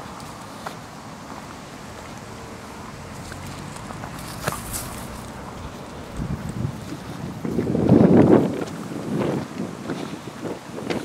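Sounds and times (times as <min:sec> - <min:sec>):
wind buffeting microphone: 0:00.9 - 0:11.0.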